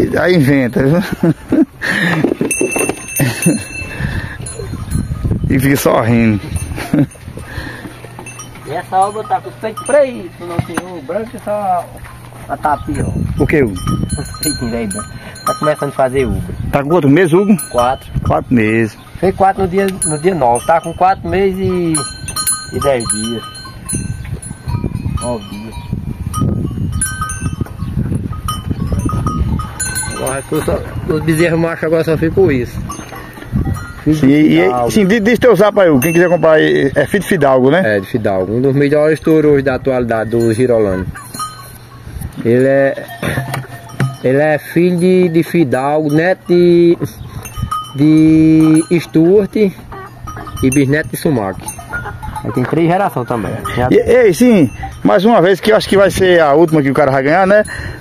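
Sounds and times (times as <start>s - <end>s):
cattle bell clanking: 0.0s - 58.0s
cattle knocking and shuffling: 0.2s - 36.6s, 41.0s - 46.1s, 48.6s - 57.7s
metallic ringing tone: 2.4s - 57.9s
farm animal calling low: 49.4s - 50.9s
cattle call: 49.7s - 56.1s.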